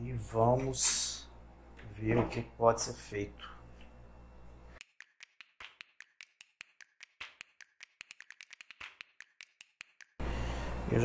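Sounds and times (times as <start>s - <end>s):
small clicks and taps: 4.8s - 10.2s.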